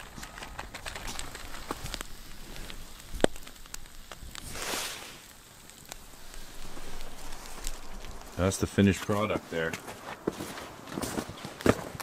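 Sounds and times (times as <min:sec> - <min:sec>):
campfire coals crackling: 0:00.0 - 0:12.0
fire popping: 0:00.0 - 0:12.0
sizzling hiss: 0:00.0 - 0:12.0.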